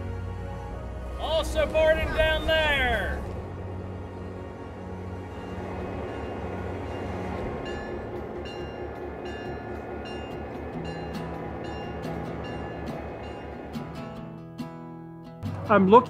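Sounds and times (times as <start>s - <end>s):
passenger train rumbling past: 0.0s - 16.0s.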